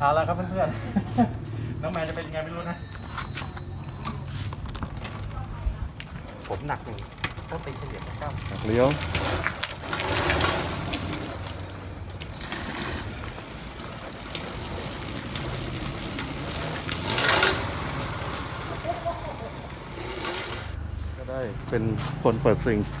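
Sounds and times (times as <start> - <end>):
electric go-kart driving: 4.6 - 20.8.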